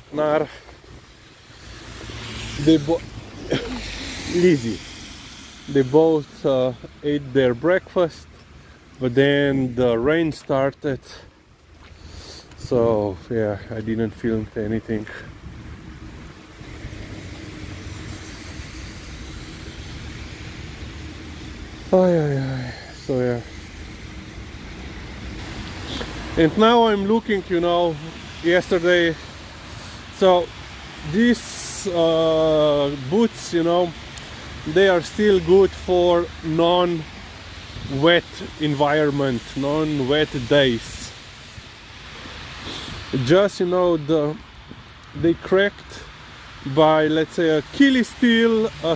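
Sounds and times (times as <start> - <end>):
road traffic rumble: 0.0 - 48.9
tyre hiss from passing cars: 0.0 - 48.9.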